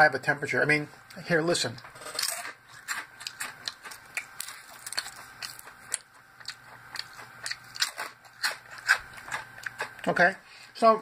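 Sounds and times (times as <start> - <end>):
chips crunching as chewed: 2.0 - 10.1.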